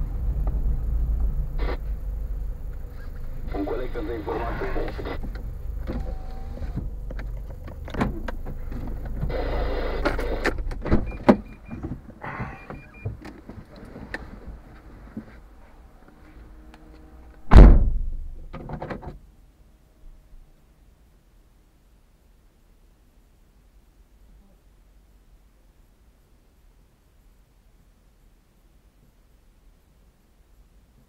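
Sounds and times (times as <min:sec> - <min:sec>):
low hum: 0:00.0 - 0:18.6
loud thump: 0:17.4 - 0:18.8.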